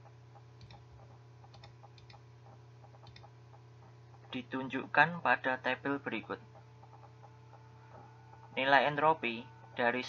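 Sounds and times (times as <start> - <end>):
faint ticking: 0.0 - 4.4
steady low hum: 0.0 - 10.0.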